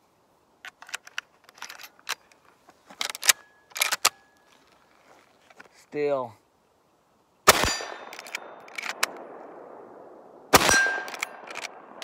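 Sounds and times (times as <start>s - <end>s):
rifle lever clicks: 3.0s - 4.2s, 8.1s - 9.2s, 10.6s - 11.8s
rifle shots: 7.4s - 12.0s.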